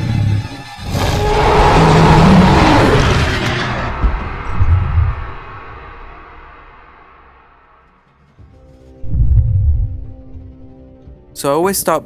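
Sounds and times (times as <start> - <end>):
loud creature roar: 0.8 - 5.6
dramatic music: 0.8 - 11.6.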